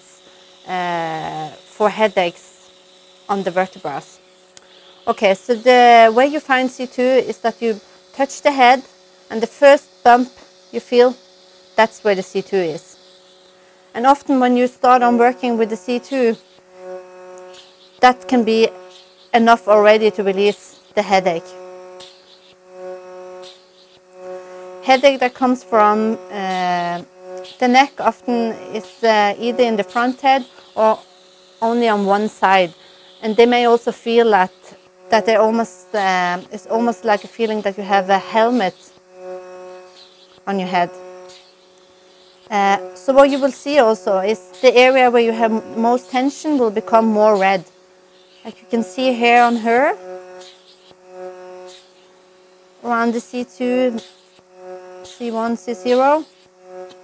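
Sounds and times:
suction pump humming: 0.0s - 57.0s.

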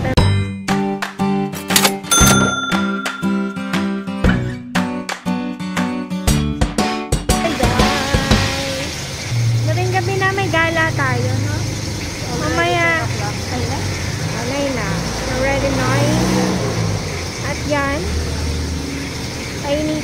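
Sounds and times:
people talking: 7.4s - 9.0s, 9.7s - 16.2s, 17.4s - 18.1s, 19.6s - 20.0s.

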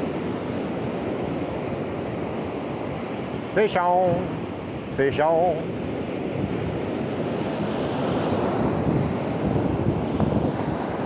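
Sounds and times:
ocean surf washing onto beach: 0.0s - 11.0s
wind buffeting microphone: 0.0s - 11.0s.

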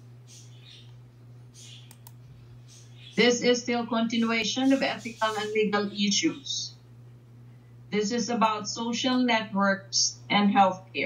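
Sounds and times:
steady low hum: 0.0s - 11.0s
computer mouse clicks: 1.6s - 2.2s.

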